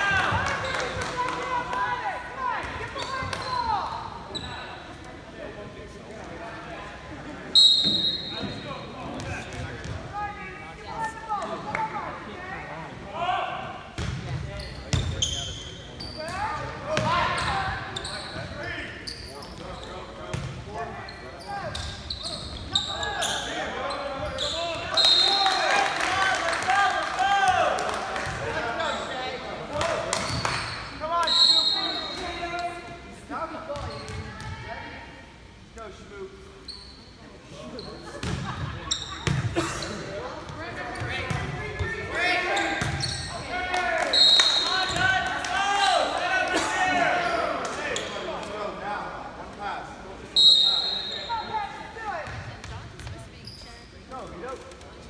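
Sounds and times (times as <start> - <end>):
referee's whistle blasts: 7.5 - 8.6, 24.4 - 25.5, 31.2 - 32.2, 44.0 - 45.0, 50.4 - 51.6.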